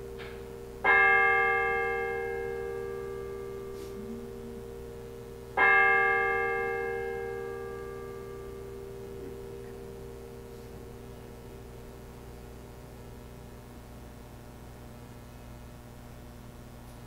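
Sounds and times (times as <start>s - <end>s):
steady low tone: 0.0s - 16.4s
bell ringing: 0.8s - 11.0s.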